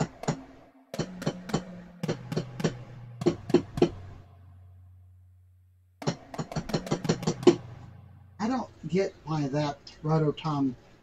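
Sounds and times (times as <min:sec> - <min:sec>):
drum toms playing a fill: 0:00.0 - 0:04.6, 0:06.0 - 0:09.4.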